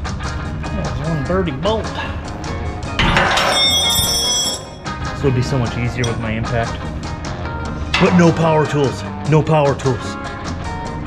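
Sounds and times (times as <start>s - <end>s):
metal tool clattering on concrete: 3.0s - 6.9s, 7.9s - 9.0s.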